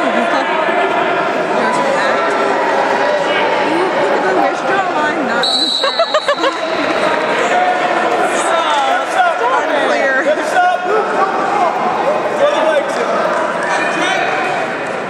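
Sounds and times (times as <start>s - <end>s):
crowd shouting in echoing gym: 0.0s - 15.0s.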